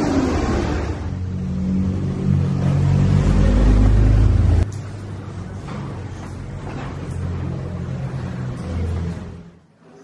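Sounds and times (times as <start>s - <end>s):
vehicle engine rumbling: 0.0s - 9.6s.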